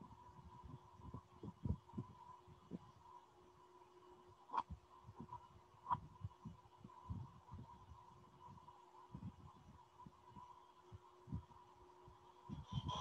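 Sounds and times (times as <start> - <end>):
high electrical hum: 0.0 - 13.0.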